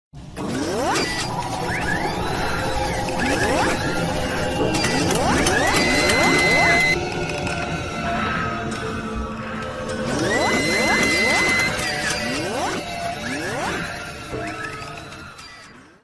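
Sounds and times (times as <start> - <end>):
mechanical whirring and ratcheting: 0.3 - 7.9, 9.8 - 16.0
rising servo-like whines: 0.4 - 7.6, 8.8 - 16.0.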